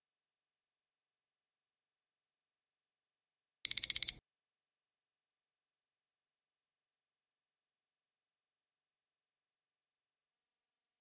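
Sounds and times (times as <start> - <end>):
high-pitched electronic alarm beeps: 3.7 - 4.2.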